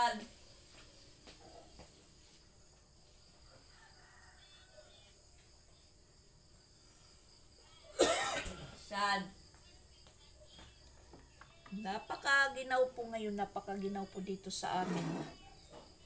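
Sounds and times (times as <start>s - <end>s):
woman coughing: 7.9s - 8.8s.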